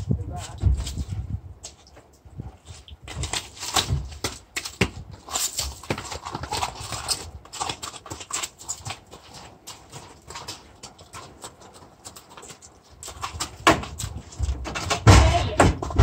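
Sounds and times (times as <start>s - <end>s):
hooves on gravel: 0.0s - 16.0s.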